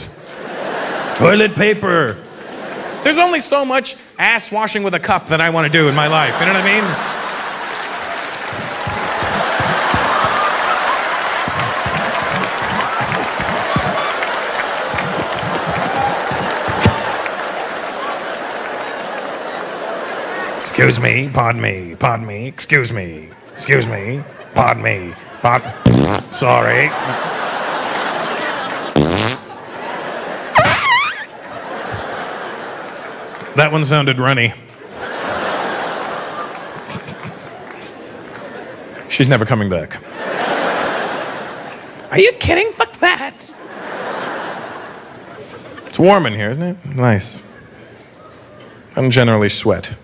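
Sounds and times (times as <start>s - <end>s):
audience laughing: 0.0s - 3.6s, 5.7s - 21.3s, 23.1s - 39.1s, 40.0s - 42.1s, 42.8s - 46.0s
audience applauding: 5.9s - 20.7s, 25.9s - 29.3s, 29.9s - 34.1s, 35.0s - 39.2s
mouth fart noises: 8.3s - 10.5s, 11.2s - 17.2s, 25.8s - 26.4s, 28.9s - 29.5s, 30.6s - 31.3s.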